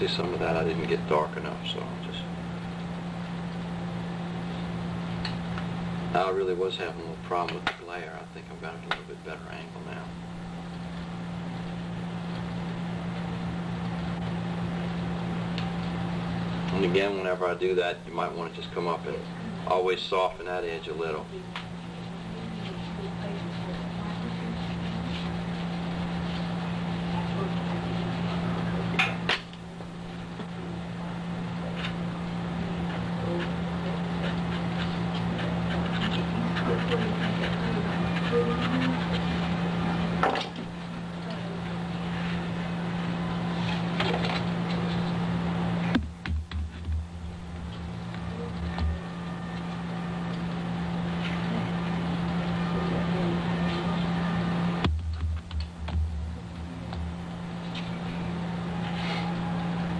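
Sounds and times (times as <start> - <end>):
low electrical hum: 0.0 - 59.9
low fluttering rumble: 54.7 - 58.4.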